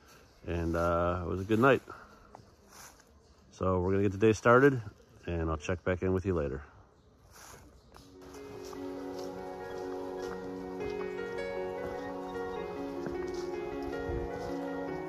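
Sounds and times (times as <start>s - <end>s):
background music sustained notes: 7.2s - 15.0s.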